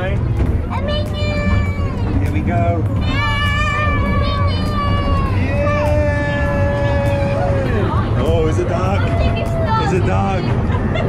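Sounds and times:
steady low rumble: 0:00.0 - 0:11.0
toddler squealing: 0:03.0 - 0:05.5.

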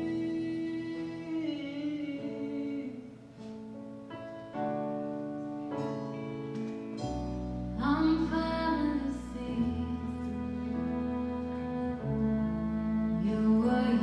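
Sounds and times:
person singing: 0:00.0 - 0:03.5, 0:07.8 - 0:14.0
sustained instrumental chords: 0:03.2 - 0:14.0
deep bass: 0:07.0 - 0:14.0.

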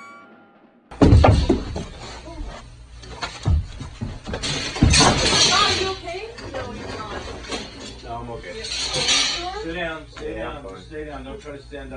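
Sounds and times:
loud thump of person falling: 0:00.9 - 0:01.9.

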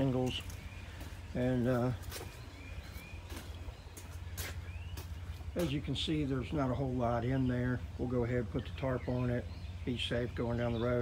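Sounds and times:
footsteps: 0:00.0 - 0:06.1.

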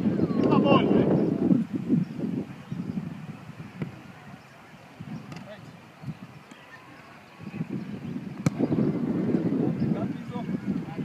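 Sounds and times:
wind buffeting microphone: 0:00.0 - 0:11.0
football kicked thud: 0:08.4 - 0:08.7.

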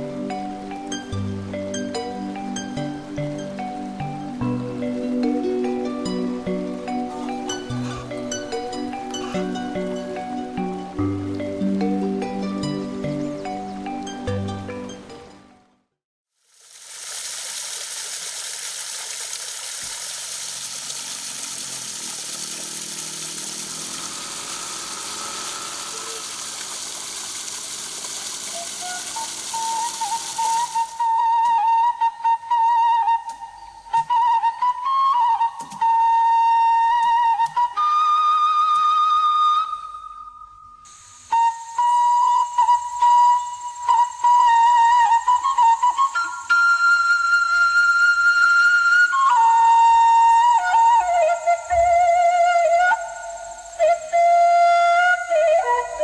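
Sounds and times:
solo flute melody: 0:00.0 - 0:15.2, 0:23.7 - 0:26.8, 0:28.2 - 0:56.0
steady hiss: 0:16.4 - 0:31.2, 0:40.8 - 0:56.0.

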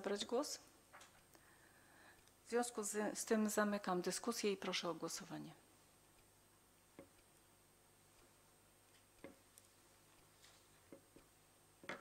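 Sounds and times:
faint clicks and taps: 0:00.9 - 0:01.5, 0:06.9 - 0:07.5, 0:08.1 - 0:12.0.

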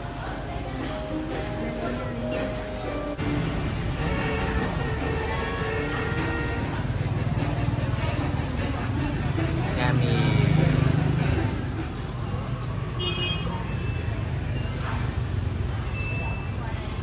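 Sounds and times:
low rumble of road traffic: 0:00.0 - 0:17.0
vehicle passing: 0:06.6 - 0:13.0.

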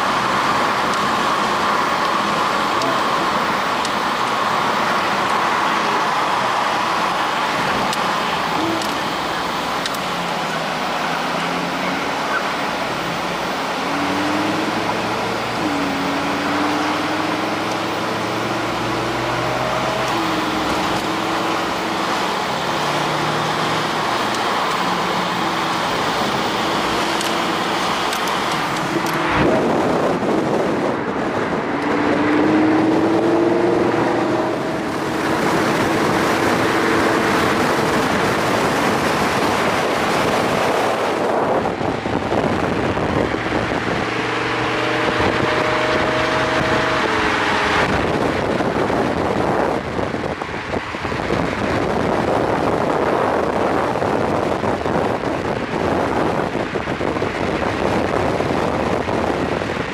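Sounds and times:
car engine: 0:00.0 - 0:59.9
passing traffic with wind: 0:00.0 - 0:59.9
road noise: 0:00.0 - 0:59.9.

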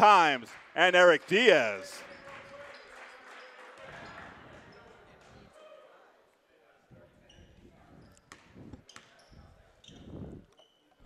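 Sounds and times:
sneaker squeaks: 0:02.0 - 0:05.4, 0:07.2 - 0:11.0.

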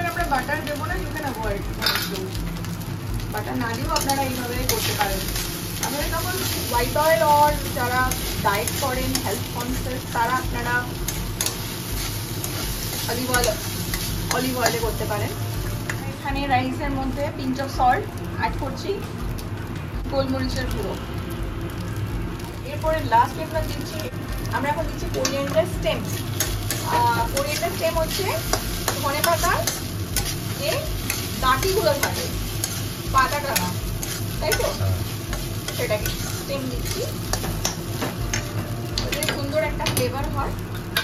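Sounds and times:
low stove rumble: 0:00.0 - 0:41.0
rice sizzling in a pan: 0:00.0 - 0:41.0
metal spatula scraping a pan: 0:26.2 - 0:39.4.

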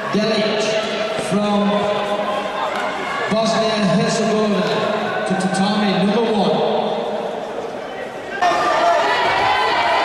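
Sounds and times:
voices shouting in hall: 0:07.8 - 0:10.0.

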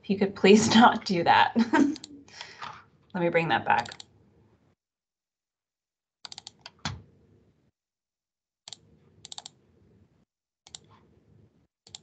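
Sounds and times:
keyboard and mouse clicks: 0:03.8 - 0:04.1, 0:06.2 - 0:07.1, 0:08.7 - 0:09.6, 0:10.7 - 0:11.1.

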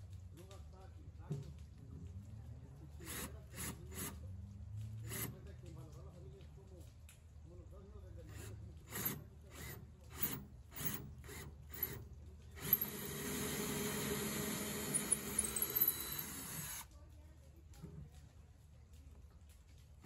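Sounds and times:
cordless drill drilling into wood: 0:05.1 - 0:05.4, 0:08.3 - 0:12.0, 0:12.6 - 0:16.9.

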